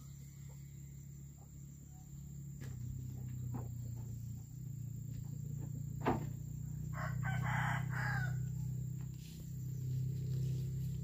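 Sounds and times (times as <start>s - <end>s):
steady low hum: 0.0s - 11.0s
rooster crowing: 6.8s - 8.7s.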